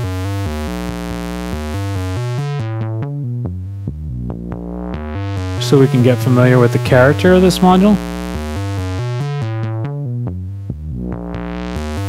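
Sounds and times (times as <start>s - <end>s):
synthesizer notes through a filter: 0.0s - 12.0s.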